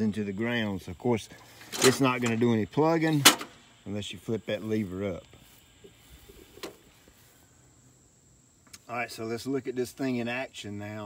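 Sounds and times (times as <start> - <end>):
crickets droning: 0.0 - 11.0.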